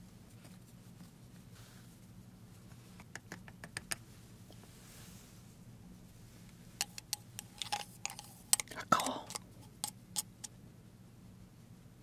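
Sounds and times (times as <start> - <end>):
rustle: 0.0 - 3.0, 4.2 - 6.6
chopsticks tapping glass jar: 6.8 - 10.5.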